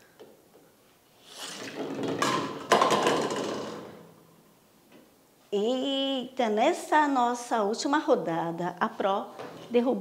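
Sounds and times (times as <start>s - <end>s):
plastic ball rolling on wood: 1.7s - 4.0s
toy bowling pins clattering: 2.0s - 4.0s.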